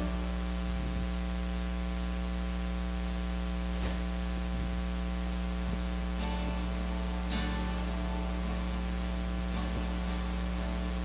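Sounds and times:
electrical mains hum with hiss: 0.0s - 11.0s.

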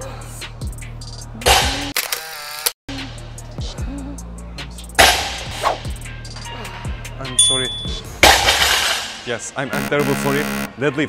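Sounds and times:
music with bass beat: 0.0s - 1.9s, 2.9s - 8.3s.

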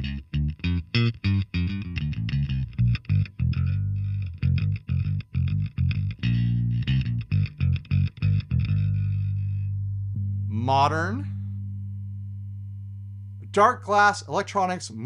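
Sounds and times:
electric bass plucked notes: 0.0s - 15.0s.

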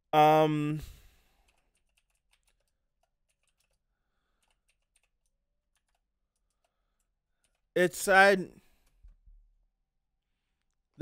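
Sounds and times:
keyboard typing clicks: 1.4s - 3.8s, 4.4s - 7.7s.

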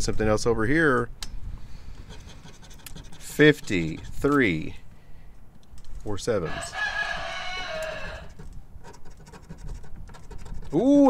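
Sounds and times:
coin scratching lottery ticket: 2.0s - 4.5s, 8.2s - 10.9s.

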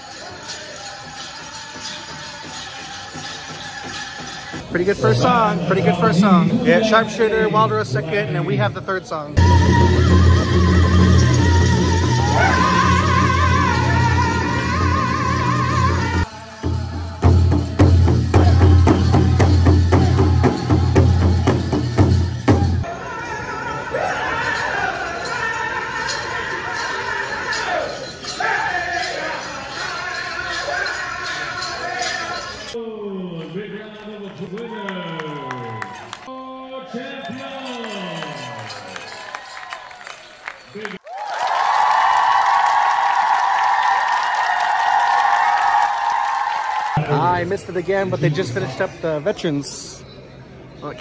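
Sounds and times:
jingling leg bells: 0.0s - 5.4s, 9.4s - 32.8s, 37.2s - 41.0s
singers chanting: 9.4s - 21.8s, 22.5s - 32.8s
steady drumbeat: 9.4s - 22.8s.

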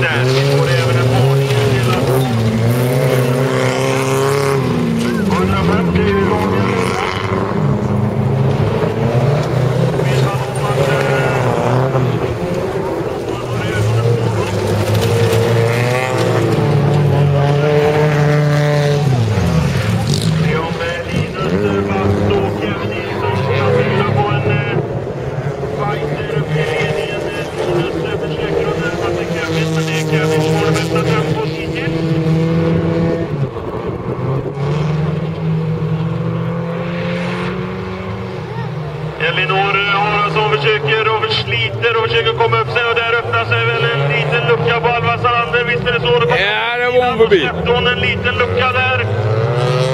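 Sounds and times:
race car engines revving: 0.0s - 49.9s.

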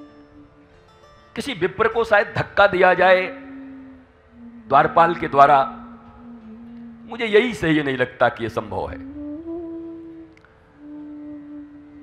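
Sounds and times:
man humming: 3.3s - 7.8s, 8.8s - 12.0s.

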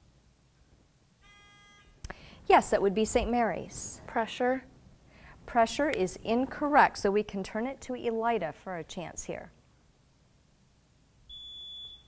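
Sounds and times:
quiz-show buzzer tone: 1.2s - 2.0s, 11.3s - 12.0s.

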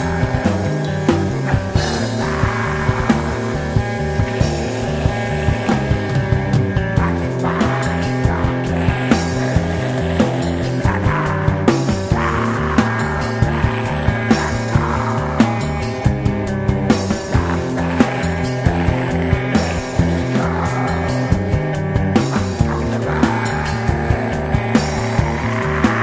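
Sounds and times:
distorted electric guitars and bass: 0.0s - 26.0s.

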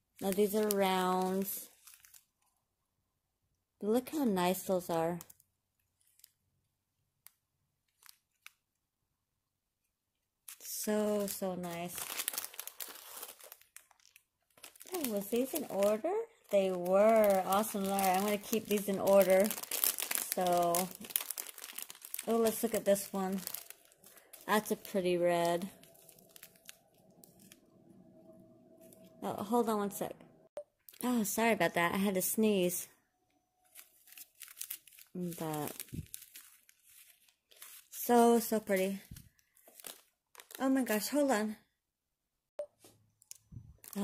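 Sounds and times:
plastic bag crinkling: 0.1s - 2.4s, 4.5s - 6.4s, 7.8s - 8.8s, 10.5s - 27.7s, 33.6s - 41.2s, 43.2s - 44.0s.

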